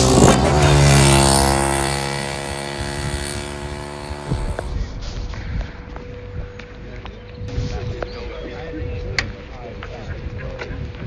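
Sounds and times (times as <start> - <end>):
motorcycle passing by: 0.0 - 5.1.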